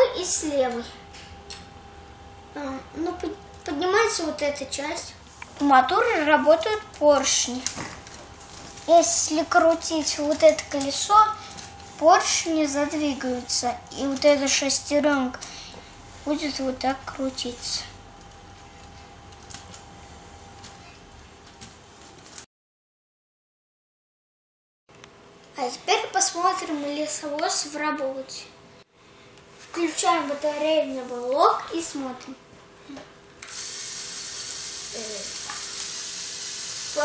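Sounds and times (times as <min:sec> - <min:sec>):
low room hum: 0:00.0 - 0:22.4
electric motor whirring: 0:33.4 - 0:37.0.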